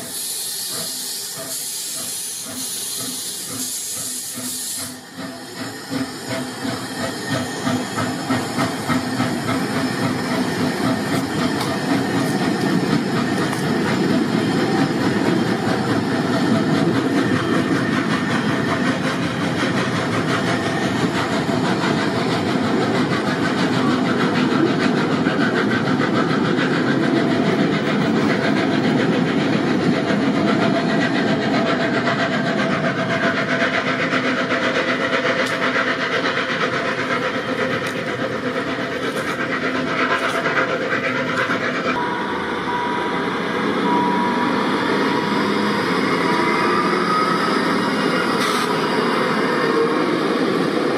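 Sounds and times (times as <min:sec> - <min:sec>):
steam hiss: 0:00.0 - 0:50.9
train carriages clattering over rails: 0:00.0 - 0:50.9.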